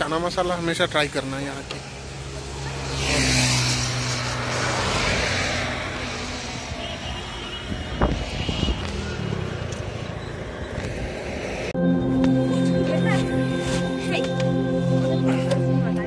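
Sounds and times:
vehicle passing by: 2.0s - 7.1s.

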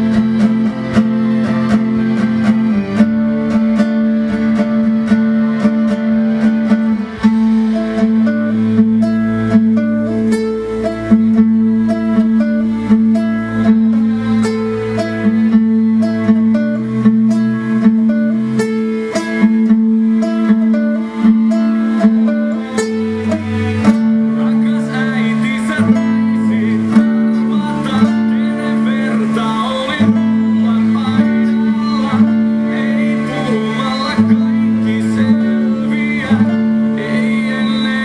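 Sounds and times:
acoustic guitar plucked: 0.0s - 38.0s.

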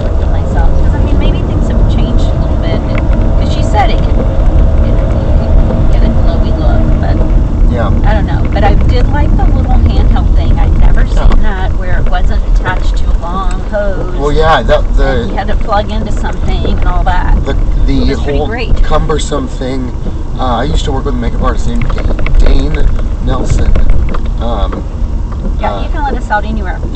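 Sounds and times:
faint voices talking: 0.0s - 24.9s
car road and engine rumble: 0.0s - 26.9s.

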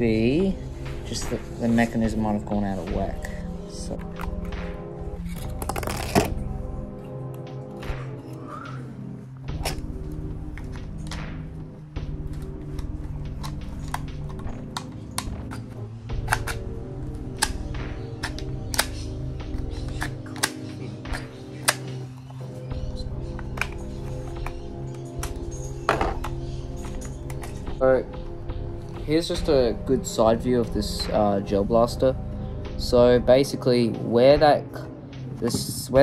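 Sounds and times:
background music: 0.0s - 36.0s
plastic pistol clicks and snaps: 16.2s - 16.7s, 17.3s - 22.0s.

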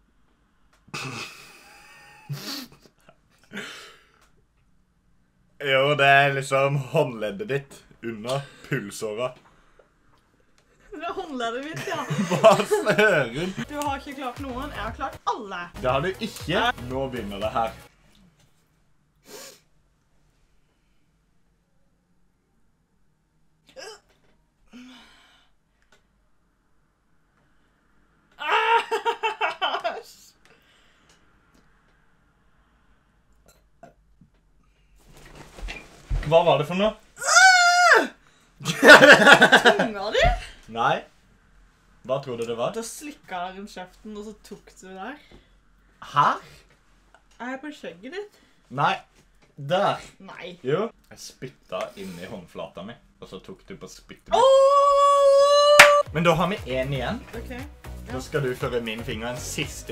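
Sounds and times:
person squealing and laughing: 28.4s - 29.4s, 37.2s - 38.1s, 54.3s - 56.0s.

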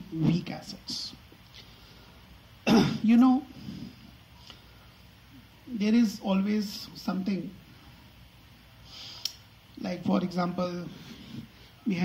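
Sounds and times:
man coughing: 2.6s - 3.2s.

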